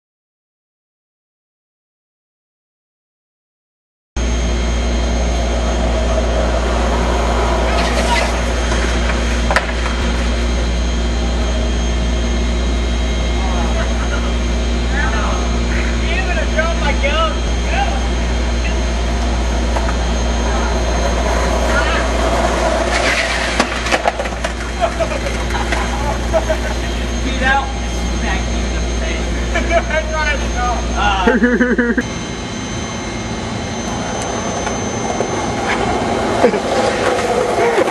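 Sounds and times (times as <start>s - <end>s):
loud low hum: 4.2s - 37.9s
voices calling out: 4.6s - 32.1s, 33.8s - 37.9s.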